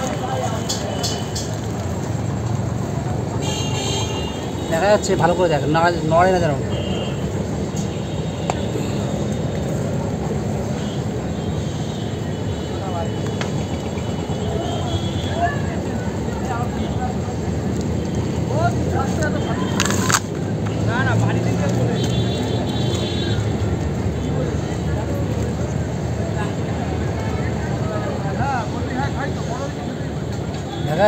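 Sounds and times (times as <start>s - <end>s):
road traffic rumble: 0.0s - 31.0s.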